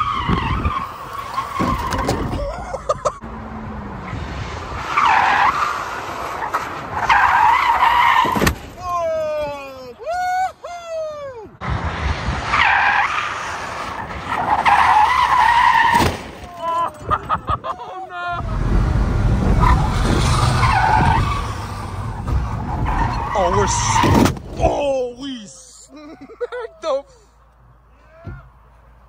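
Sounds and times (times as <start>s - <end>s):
tires squealing: 0.0s - 9.4s, 11.6s - 25.1s.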